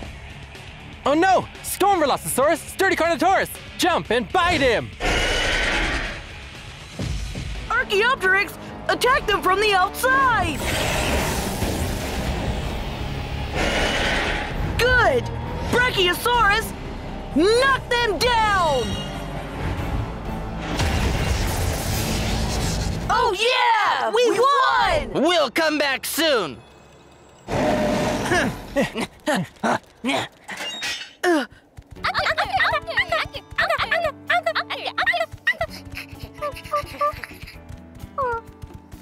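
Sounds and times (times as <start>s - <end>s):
background music: 0.0s - 30.5s, 31.2s - 39.0s.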